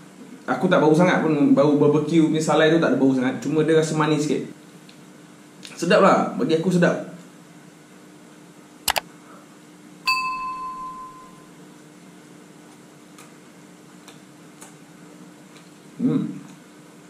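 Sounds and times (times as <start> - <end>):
bright bell ding: 10.1 - 11.5.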